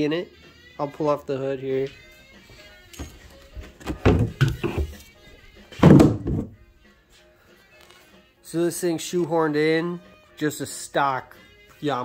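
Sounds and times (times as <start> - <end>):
hood knocks and thunks: 3.0 - 5.0, 5.7 - 6.6
loud hood thunk: 3.8 - 5.0, 5.8 - 6.6.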